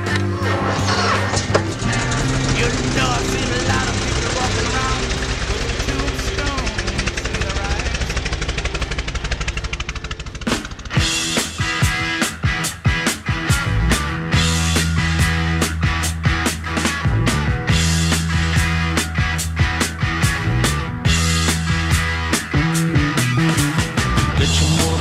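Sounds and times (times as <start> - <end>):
motorcycle engine running: 0.0 - 25.0
rock music: 0.0 - 25.0
sharp hits: 0.7 - 12.6.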